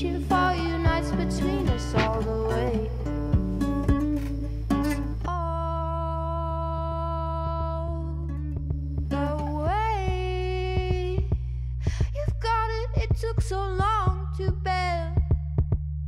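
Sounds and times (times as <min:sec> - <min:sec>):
plucked guitar notes: 0:00.0 - 0:05.8
low bass: 0:00.0 - 0:16.0.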